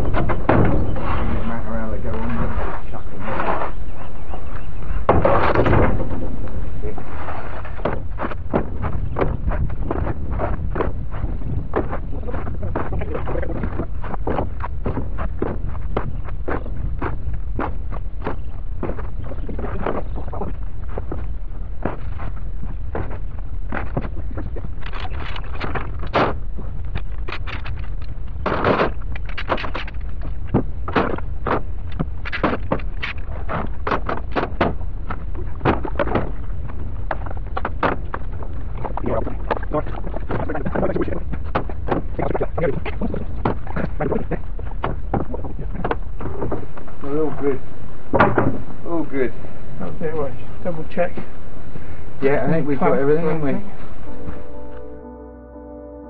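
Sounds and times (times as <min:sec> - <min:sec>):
wooden boards clattering: 0:00.0 - 0:01.6, 0:05.0 - 0:22.3, 0:22.9 - 0:47.4, 0:48.1 - 0:48.8
wind buffeting microphone: 0:00.0 - 0:54.8.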